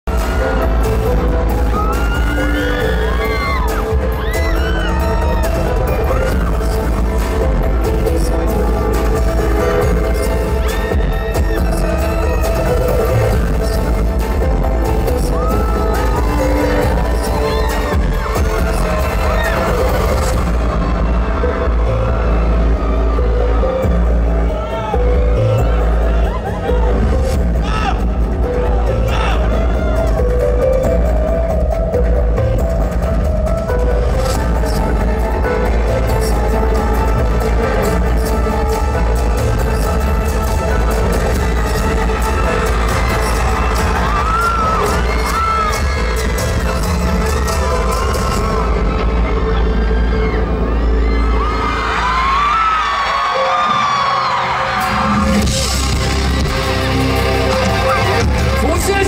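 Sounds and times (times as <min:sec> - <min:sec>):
rock band playing live: 0:54.7 - 0:59.0.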